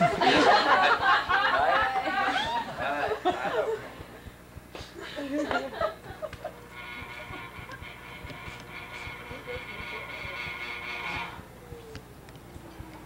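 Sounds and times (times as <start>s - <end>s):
potter's wheel motor whining: 0.0s - 13.0s.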